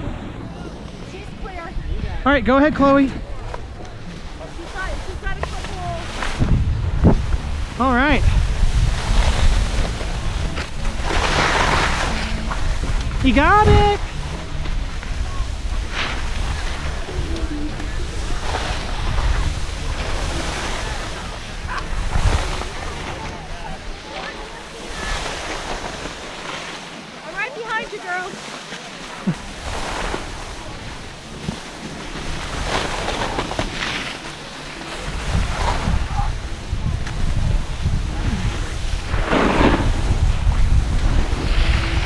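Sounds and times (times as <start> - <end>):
wind buffeting microphone: 0.0 - 26.4, 34.8 - 42.0
skis swishing through snow: 2.8 - 6.6, 7.2 - 42.0.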